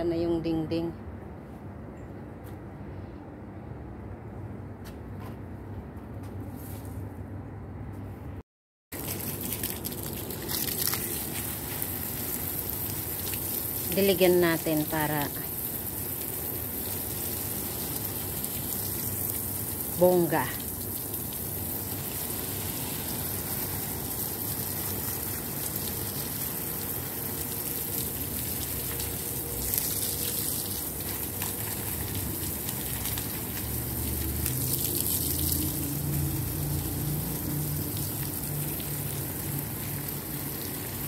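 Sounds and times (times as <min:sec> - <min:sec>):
hose spraying water: 0:08.9 - 0:41.0.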